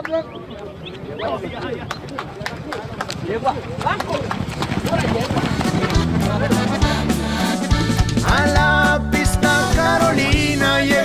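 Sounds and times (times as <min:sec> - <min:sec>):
horse hoofbeats on dirt: 0:00.0 - 0:08.6
music: 0:05.6 - 0:11.0.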